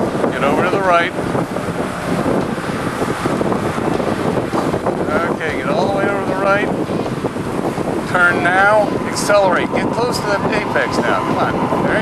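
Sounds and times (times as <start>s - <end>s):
car engine at speed: 0.0s - 12.0s
wind noise: 0.0s - 12.0s.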